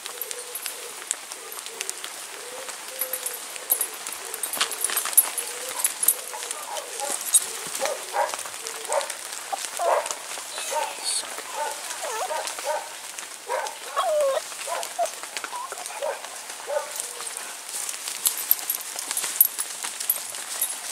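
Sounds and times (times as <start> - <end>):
twigs snapping underfoot: 0.1 - 20.9
dog whining and whimpering: 9.5 - 12.8, 13.5 - 16.9.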